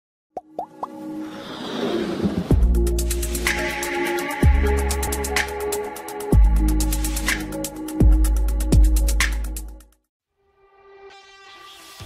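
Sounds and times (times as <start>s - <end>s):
musical riser: 1.0s - 6.2s.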